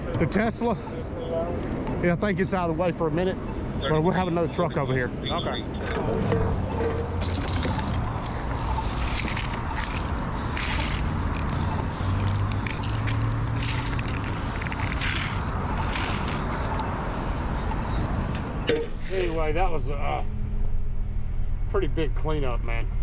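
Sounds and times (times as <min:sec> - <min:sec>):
low engine hum: 0:03.0 - 0:23.0
push broom scraping asphalt: 0:06.0 - 0:17.5.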